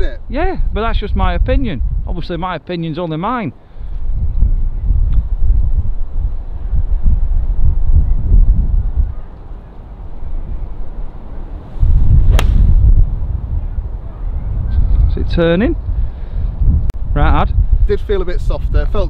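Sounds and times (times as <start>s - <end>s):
wind buffeting microphone: 0.0s - 2.5s, 3.7s - 19.0s
golf club striking ball: 12.2s - 12.9s.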